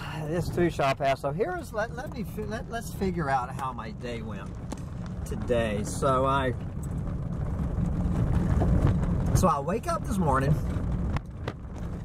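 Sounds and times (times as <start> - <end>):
tyres on dirt road: 0.0 - 12.0
vehicle engine rumble: 0.0 - 12.0.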